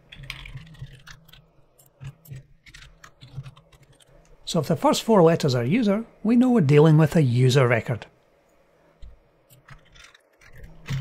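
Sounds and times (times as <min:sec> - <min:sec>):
low steady hum: 0:00.0 - 0:11.0
computer keyboard typing: 0:00.1 - 0:04.2.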